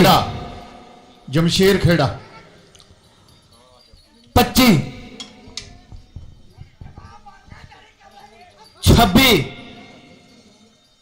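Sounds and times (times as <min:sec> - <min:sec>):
voices murmuring: 0:00.0 - 0:11.0
hooves thudding on dirt: 0:02.8 - 0:04.7, 0:05.3 - 0:08.7.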